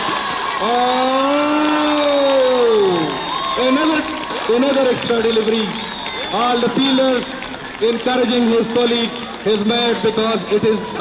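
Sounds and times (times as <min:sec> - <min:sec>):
man exclaiming: 0:00.6 - 0:02.8.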